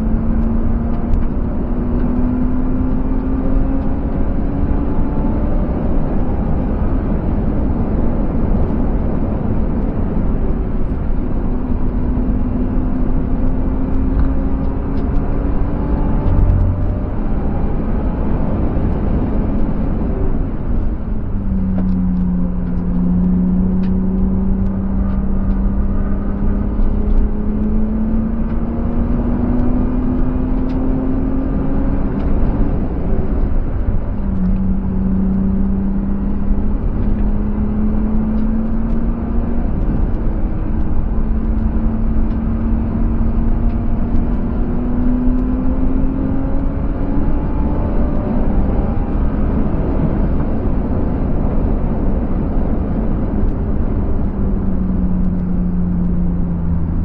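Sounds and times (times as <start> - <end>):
car engine revving under acceleration: 0.0 - 57.0
tyre road and wind rumble: 0.0 - 57.0.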